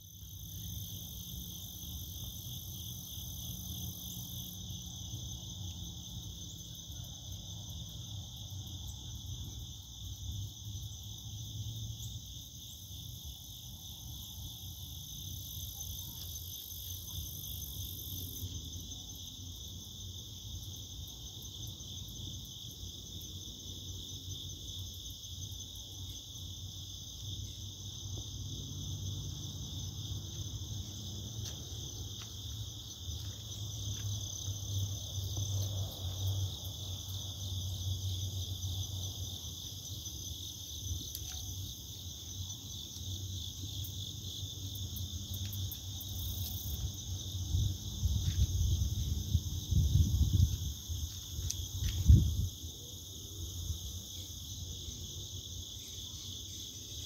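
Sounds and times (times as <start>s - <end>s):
insect chorus chirring: 0.0s - 57.0s.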